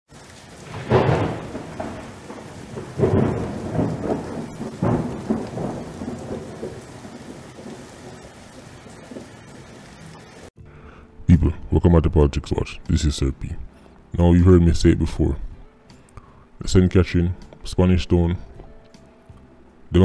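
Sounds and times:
thunder rumbling: 0:00.1 - 0:10.5
steady rain: 0:00.1 - 0:10.6.

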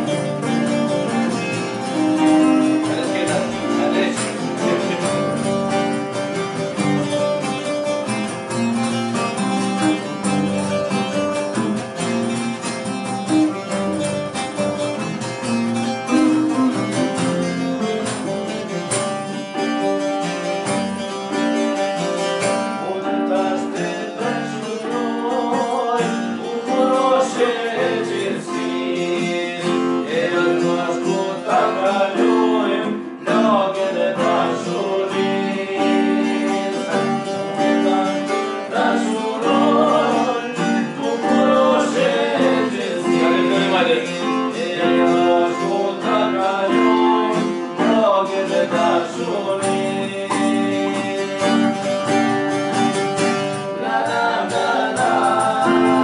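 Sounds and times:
hand frame drum: 0:00.0 - 0:19.4
electric and acoustic guitars: 0:00.0 - 0:56.0
man singing: 0:01.6 - 0:06.2, 0:22.6 - 0:52.0, 0:53.7 - 0:56.0.

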